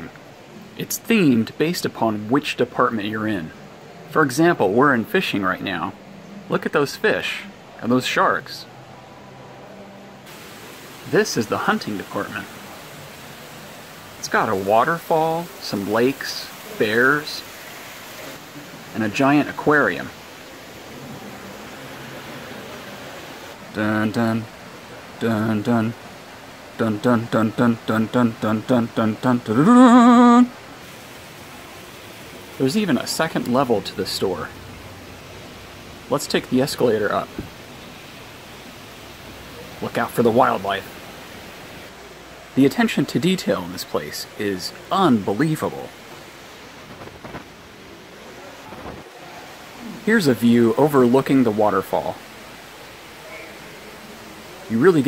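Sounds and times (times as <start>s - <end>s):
water falling into pool: 10.2s - 55.0s
faint distant voices: 51.7s - 55.0s.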